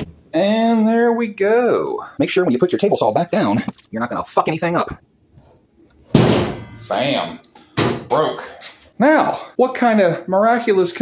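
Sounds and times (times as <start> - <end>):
heavy metal clunk ringing: 6.2 - 6.9.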